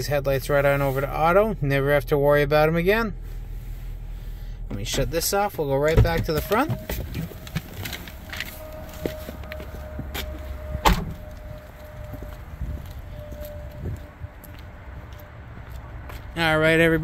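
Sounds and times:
low steady hum: 0.0s - 15.4s
car door shutting: 4.7s - 11.4s.

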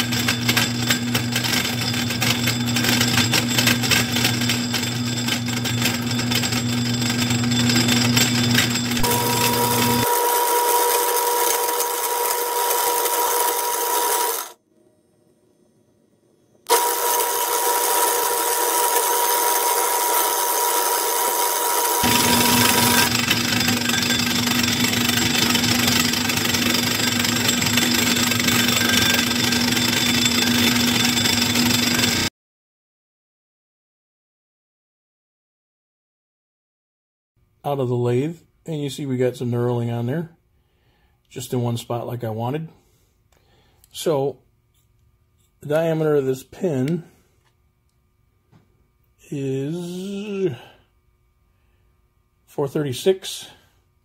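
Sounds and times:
metal lathe running: 0.0s - 14.6s, 16.7s - 32.3s
steady higher machine tone: 4.6s - 32.3s, 49.1s - 50.6s.

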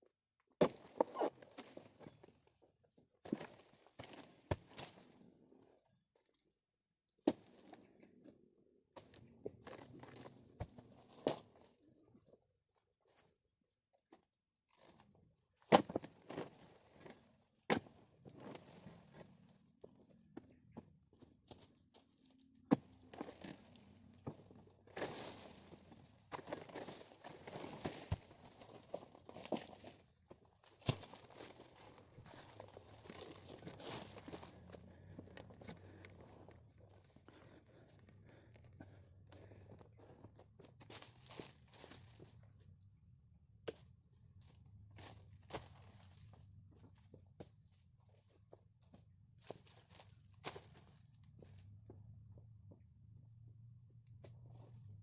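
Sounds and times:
footsteps in dry leaves: 25.0s - 30.0s, 30.6s - 35.1s.

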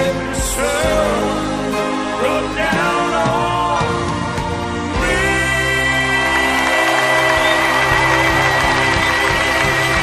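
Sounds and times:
band playing: 0.0s - 10.0s.

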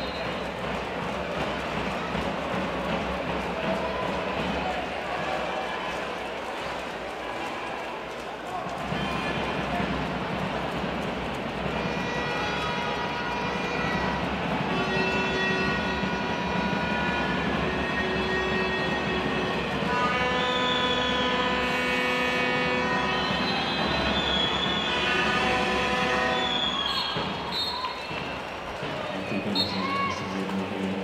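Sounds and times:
crowd din: 0.0s - 31.0s
sustained horn tones: 11.6s - 27.5s.

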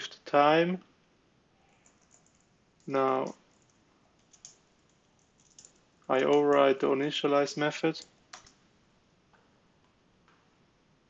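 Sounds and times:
faint keyboard typing: 1.6s - 8.7s.

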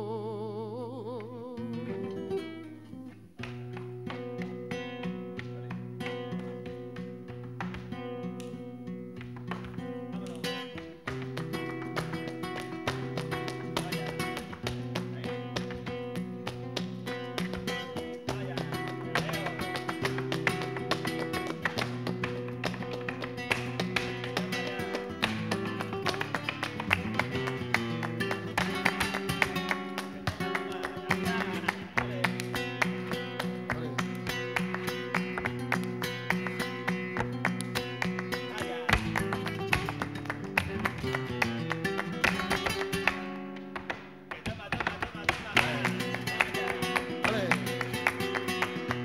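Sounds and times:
flamenco guitar playing: 0.0s - 49.0s
dancer's shoes striking wooden stage: 6.0s - 8.1s.

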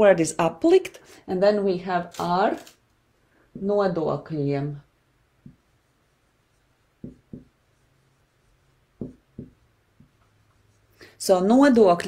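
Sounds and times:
marker writing on whiteboard: 5.4s - 10.9s.

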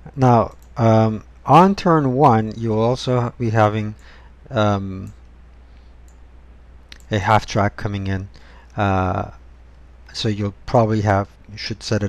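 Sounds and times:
low electrical hum: 0.0s - 12.0s
computer mouse clicking: 0.5s - 0.8s, 5.0s - 6.2s.

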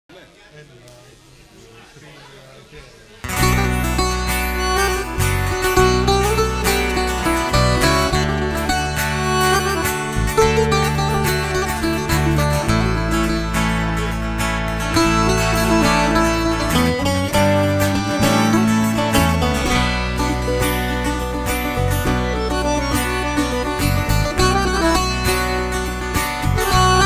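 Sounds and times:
murmur of voices: 0.1s - 27.0s
accordion: 3.2s - 27.0s
bouzouki: 3.2s - 27.0s
strummed acoustic guitar: 3.2s - 27.0s
bass guitar: 3.3s - 27.0s.

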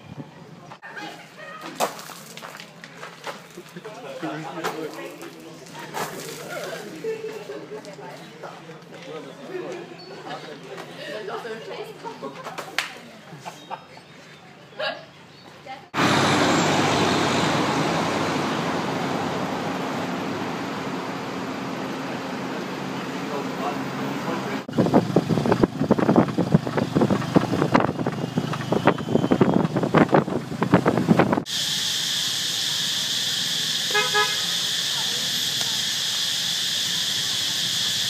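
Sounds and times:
street traffic roar: 13.8s - 38.0s
vehicle rattling and knocking: 24.7s - 31.5s
high-pitched insect drone: 31.5s - 38.0s.

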